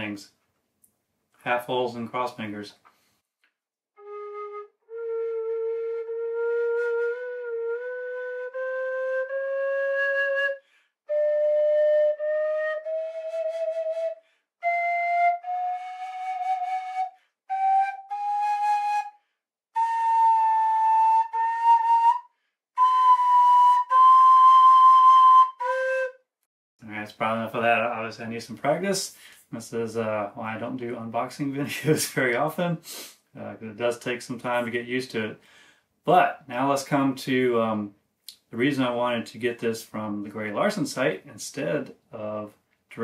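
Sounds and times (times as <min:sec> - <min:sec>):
tin whistle held notes: 0:19.8 - 0:26.2.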